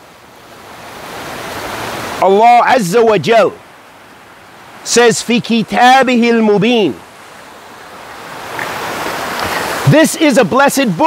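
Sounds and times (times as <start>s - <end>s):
stream rushing over rocks: 0.0s - 11.0s.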